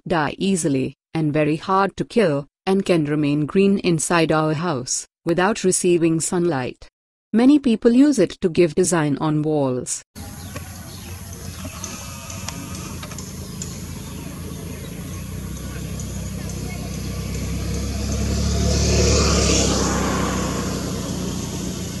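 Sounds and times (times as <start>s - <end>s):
vehicle passing with engine hum: 10.2s - 22.0s.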